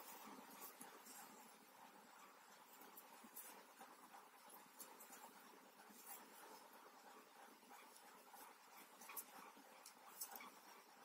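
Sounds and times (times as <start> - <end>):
knitting needles rustling yarn: 0.0 - 11.0.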